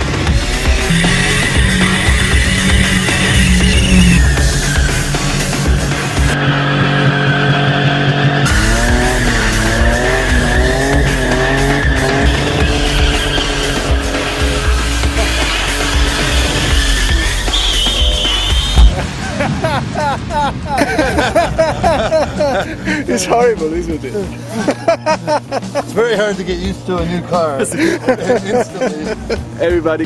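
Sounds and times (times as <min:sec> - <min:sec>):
car engine revving: 0:00.0 - 0:18.9
music: 0:00.0 - 0:30.0
tyres squealing: 0:00.6 - 0:06.3, 0:08.6 - 0:18.8.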